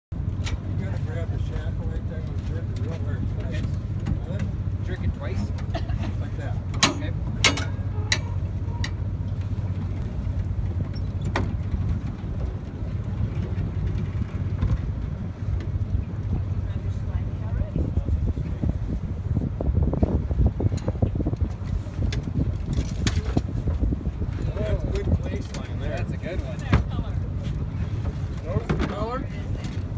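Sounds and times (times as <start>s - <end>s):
steady low rumble: 0.2s - 29.9s
people talking: 0.7s - 7.7s, 16.3s - 18.7s, 24.4s - 27.5s, 28.4s - 29.8s
knocks and clanks of gear: 6.7s - 14.9s, 20.7s - 23.5s.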